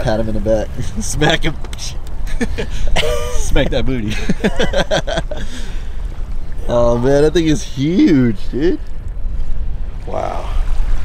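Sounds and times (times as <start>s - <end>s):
wind rumble on microphone: 0.0s - 11.0s
men laughing: 2.2s - 6.0s.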